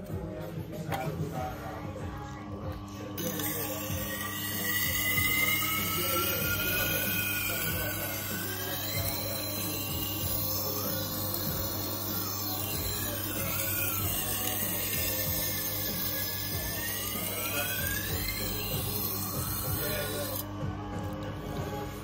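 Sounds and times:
grindstone motor hum: 0:00.0 - 0:22.0.

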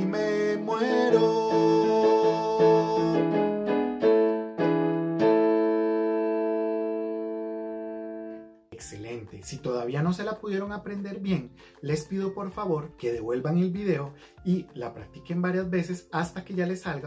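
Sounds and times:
instrumental chords: 0:00.0 - 0:17.0
man speaking: 0:08.7 - 0:17.0.

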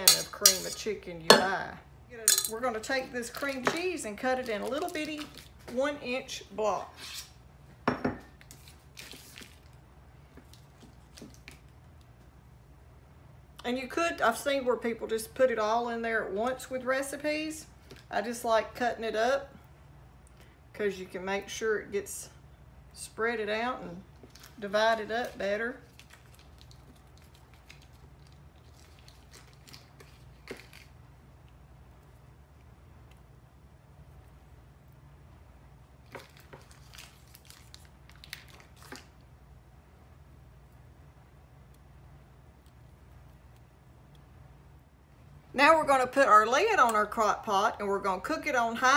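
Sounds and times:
low steady hum: 0:00.0 - 0:48.9
foil wrapper crinkling: 0:04.2 - 0:05.7, 0:24.2 - 0:31.0, 0:36.0 - 0:39.2
ceramic dish clinking on countertop: 0:07.9 - 0:08.3.

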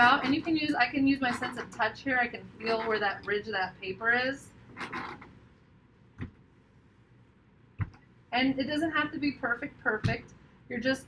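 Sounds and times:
pencil scratching on paper: 0:00.0 - 0:01.8, 0:02.6 - 0:03.2, 0:04.7 - 0:05.3.

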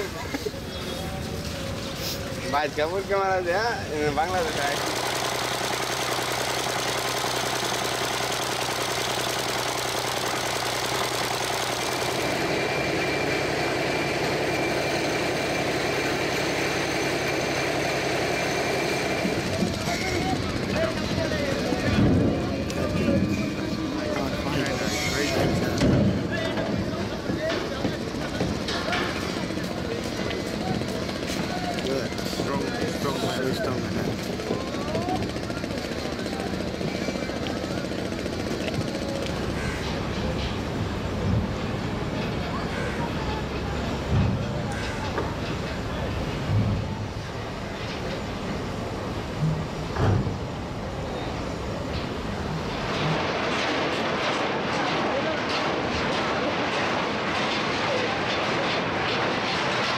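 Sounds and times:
voices on a riverbank: 0:00.0 - 0:11.8, 0:19.0 - 0:59.9
stationary engine running: 0:04.0 - 0:25.6.

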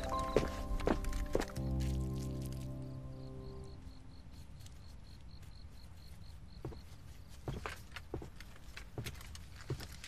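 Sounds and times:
low music chord: 0:00.0 - 0:04.0
crickets chirping: 0:00.0 - 0:09.8.

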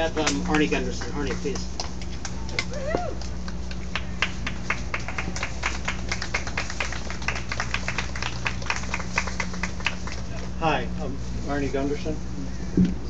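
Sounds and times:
low hum: 0:00.0 - 0:13.0
small crowd clapping: 0:00.1 - 0:10.6.

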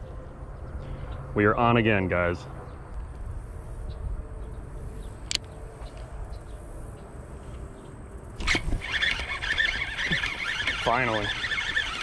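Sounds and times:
fishing reel raspy whir: 0:08.4 - 0:12.0.

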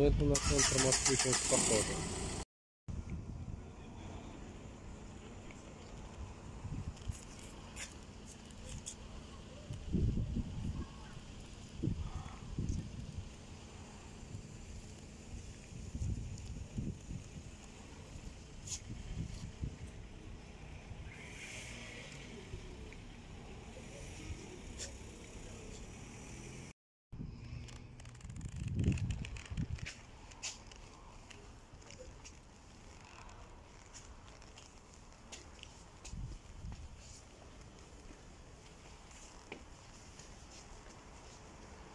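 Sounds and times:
distant traffic rumble: 0:03.0 - 0:41.9
wind on microphone: 0:09.7 - 0:13.4, 0:15.4 - 0:20.1, 0:27.2 - 0:30.2.

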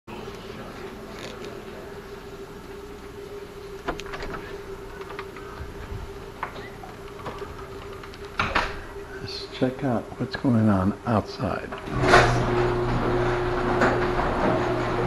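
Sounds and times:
steady hum: 0:00.1 - 0:15.0.

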